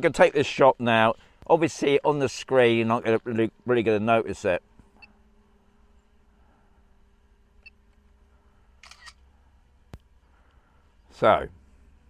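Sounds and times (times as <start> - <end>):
faint steady hum: 0.0 - 12.0
camera shutter sound: 8.8 - 9.2.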